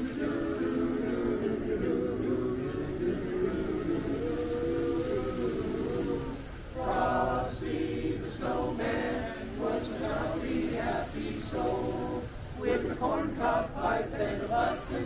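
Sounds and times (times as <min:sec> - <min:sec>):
men's chorus singing a cappella: 0:00.0 - 0:15.0.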